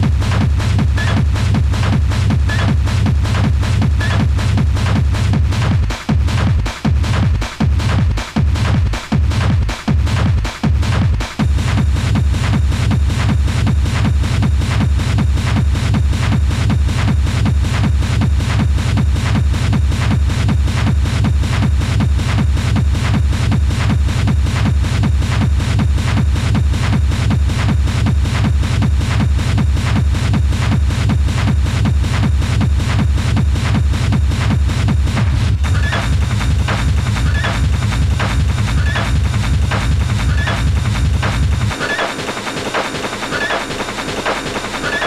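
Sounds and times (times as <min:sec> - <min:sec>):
hard techno beat with heavy bass: 0:00.0 - 0:45.0.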